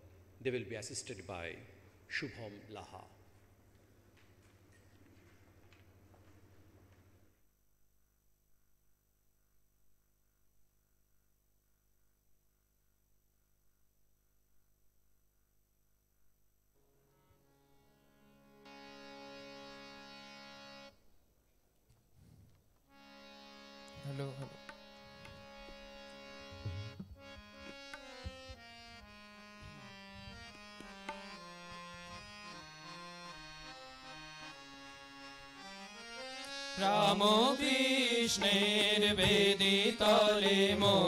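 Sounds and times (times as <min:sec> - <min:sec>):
harmonium playing: 0:16.8 - 0:21.1, 0:22.9 - 0:41.0
light tabla strokes: 0:26.4 - 0:28.7.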